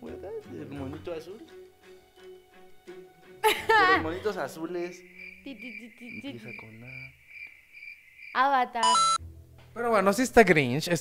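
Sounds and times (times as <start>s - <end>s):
cricket chirping: 4.2s - 9.2s.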